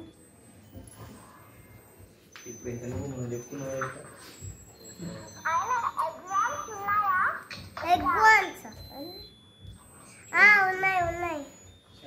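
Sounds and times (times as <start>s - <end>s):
young child talking: 5.5s - 9.2s, 10.3s - 11.5s.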